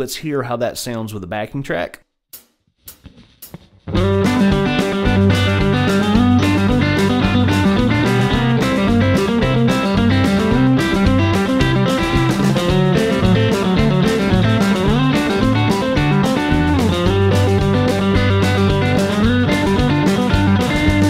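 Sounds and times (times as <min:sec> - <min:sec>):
backing track with bass: 0:02.8 - 0:21.0
electric guitar licks: 0:02.9 - 0:21.0.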